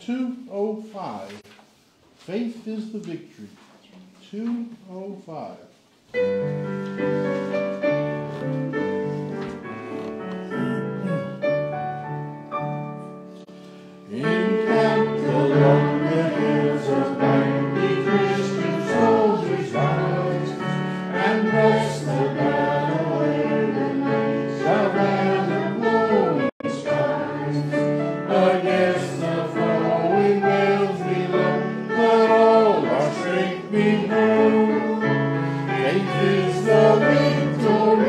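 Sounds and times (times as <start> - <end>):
instrumental accompaniment: 6.1 - 38.0
congregation singing a hymn: 13.8 - 38.0.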